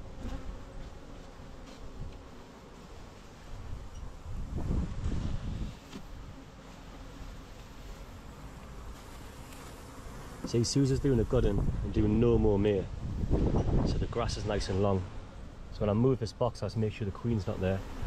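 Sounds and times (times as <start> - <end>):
bees buzzing: 0.0 - 13.8, 16.9 - 18.0.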